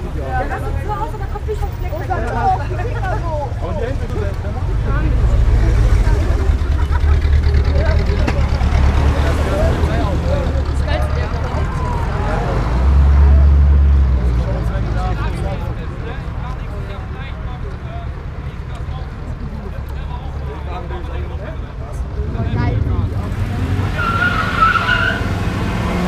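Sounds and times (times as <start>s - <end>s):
car engines rumbling past: 0.0s - 26.0s
crowd chatter: 0.0s - 26.0s.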